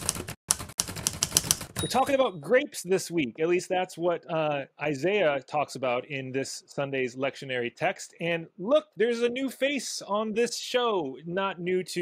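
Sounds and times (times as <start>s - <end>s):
typewriter keys clacking: 0.0s - 2.2s.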